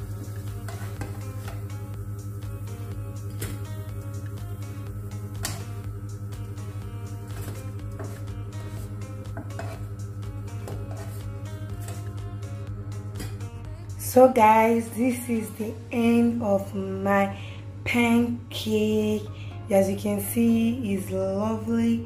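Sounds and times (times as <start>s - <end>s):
background music: 0.0s - 22.0s
spatula scraping frying pan: 0.2s - 1.8s, 7.3s - 12.2s.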